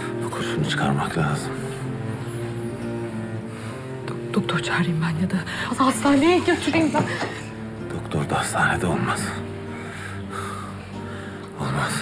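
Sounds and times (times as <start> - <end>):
low sustained bowed strings: 0.0 - 12.0.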